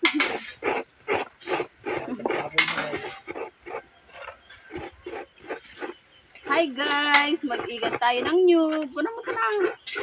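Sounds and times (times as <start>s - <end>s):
rhythmic hand scraping: 0.0s - 10.0s.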